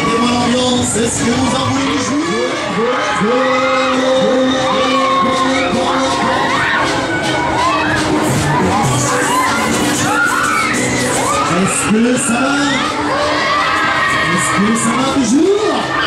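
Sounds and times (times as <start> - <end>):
fairground music: 0.0 - 16.0
riders screaming and yelling: 0.0 - 16.0.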